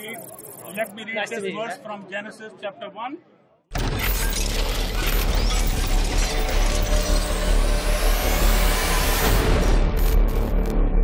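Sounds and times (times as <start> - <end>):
mechanical ratcheting and clicking: 0.0 - 1.0.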